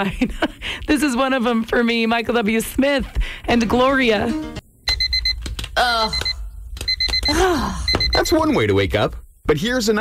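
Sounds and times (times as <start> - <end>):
alarm clock beeping: 4.9 - 5.4, 6.0 - 8.6.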